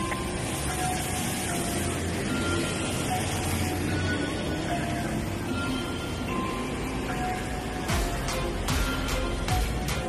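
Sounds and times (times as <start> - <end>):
road traffic passing: 0.0 - 10.0.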